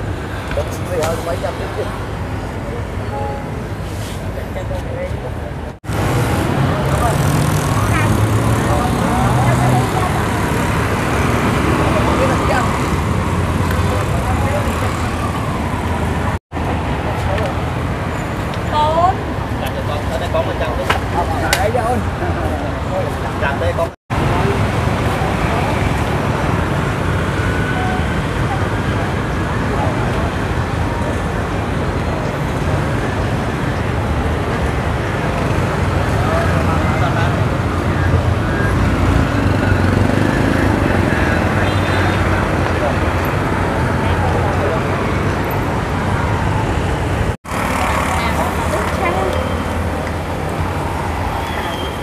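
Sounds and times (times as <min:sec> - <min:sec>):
road traffic rumble: 0:00.0 - 0:52.0
people talking: 0:00.5 - 0:02.0, 0:02.6 - 0:05.8, 0:06.5 - 0:10.6, 0:11.7 - 0:12.9, 0:13.6 - 0:15.4, 0:17.0 - 0:17.6, 0:18.6 - 0:26.4, 0:36.1 - 0:45.2, 0:47.7 - 0:52.0.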